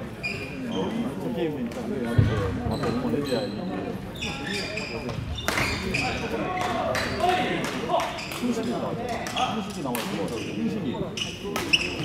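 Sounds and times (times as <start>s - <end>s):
echoing voices in sports hall: 0.0s - 12.0s.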